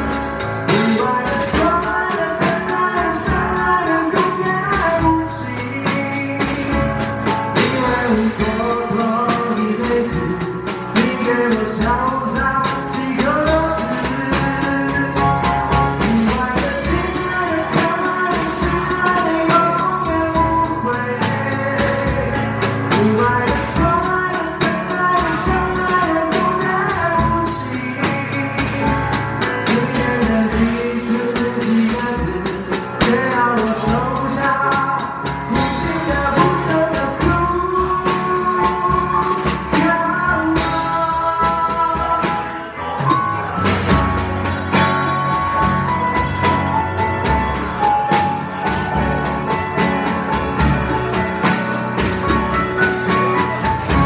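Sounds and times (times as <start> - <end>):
drum kit played with sticks: 0.0 - 54.0
recorded song with singer: 0.0 - 54.0.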